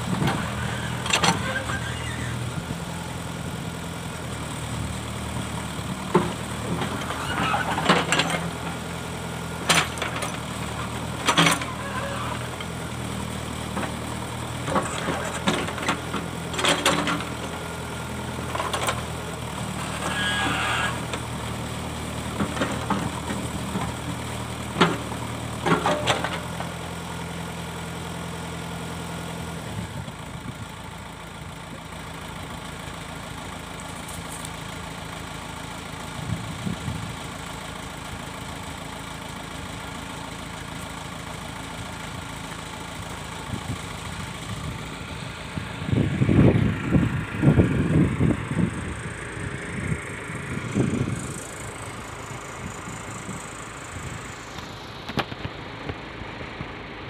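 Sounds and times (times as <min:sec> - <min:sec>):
diesel engine running: 0:00.0 - 0:57.0.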